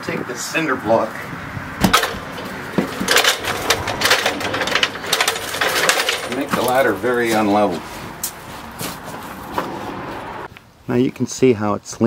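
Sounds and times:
outdoor background hum: 0.0 - 10.9
footsteps on dry leaves: 6.5 - 10.4.

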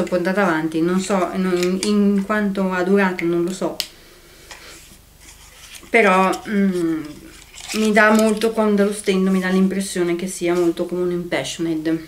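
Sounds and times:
lipstick handling noise: 1.3 - 2.0, 5.2 - 9.6.

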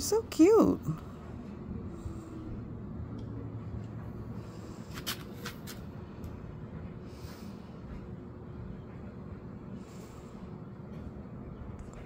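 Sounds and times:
steady low background noise: 0.0 - 12.0.

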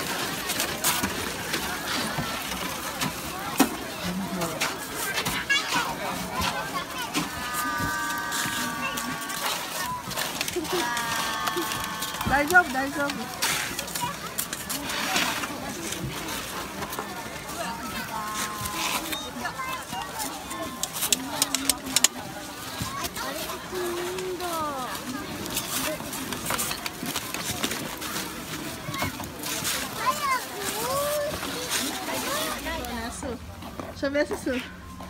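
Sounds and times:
children calling: 0.0 - 14.7
overlapping background voices: 5.8 - 13.4.

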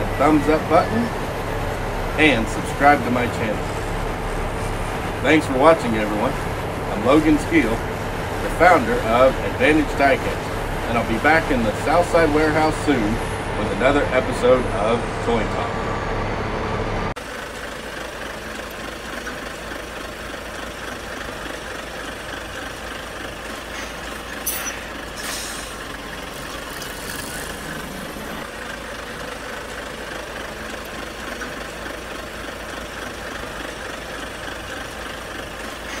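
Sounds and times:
truck diesel engine idling: 0.0 - 36.0
short hisses: 23.7 - 25.9.

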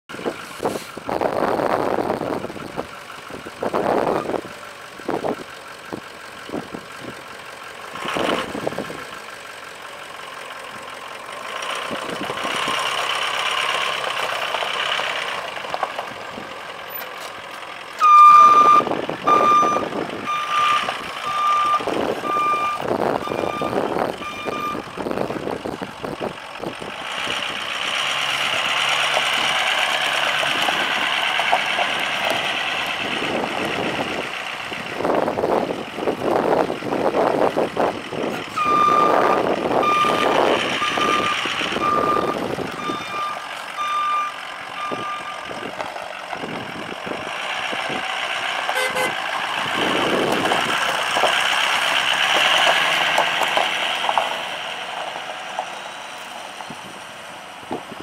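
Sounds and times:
diesel engine running: 0.1 - 58.0
truck backup alarm beeping: 4.0 - 4.5, 18.0 - 25.3, 38.4 - 45.8, 48.8 - 49.2.

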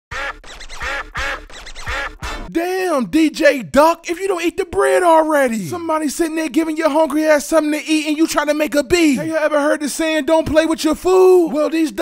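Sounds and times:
duck quacks: 0.1 - 2.5.

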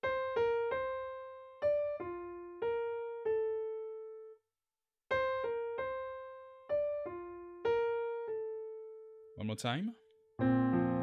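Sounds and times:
piano melody: 0.0 - 4.4, 5.1 - 9.4, 10.4 - 11.0.

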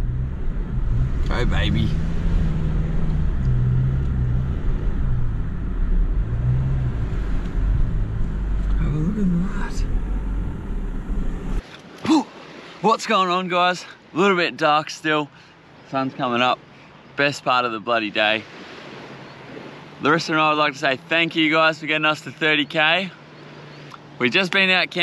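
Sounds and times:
car engine and tyres rumbling: 0.0 - 11.7, 18.5 - 25.0.

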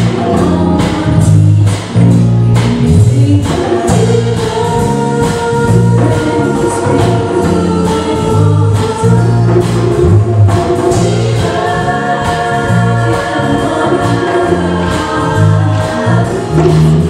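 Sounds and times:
repeating bass line: 0.0 - 17.0
choir singing held chords: 3.3 - 17.0.

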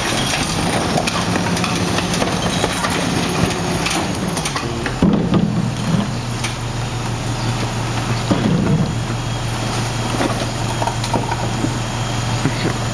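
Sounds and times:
garbage truck engine humming: 0.0 - 12.9.

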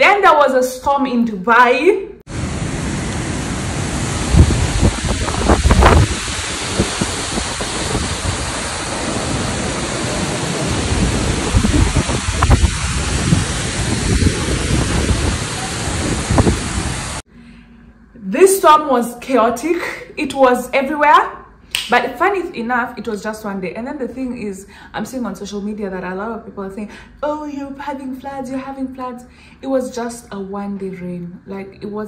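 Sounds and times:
low rumbles: 2.3 - 17.2
heavy rain pouring: 2.3 - 17.3.

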